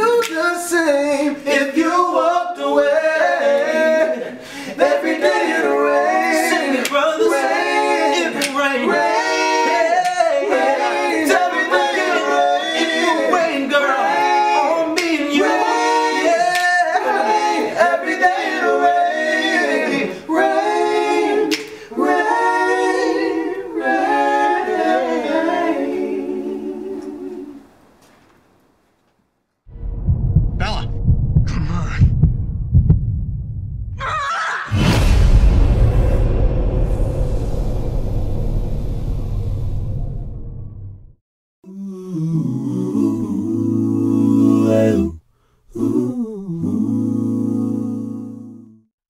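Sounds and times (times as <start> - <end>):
male vocal group singing harmony: 0.0 - 27.6, 41.7 - 48.7
heartbeat thumps: 29.7 - 34.0.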